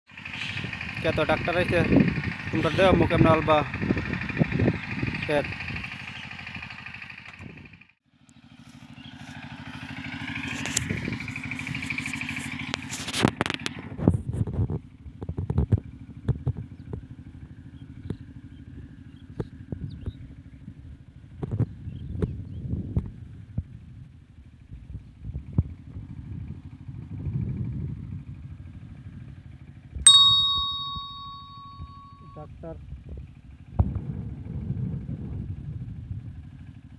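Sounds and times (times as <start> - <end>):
small engine drone: 0.1 - 36.9
sharp bell-like ding: 30.1 - 32.4.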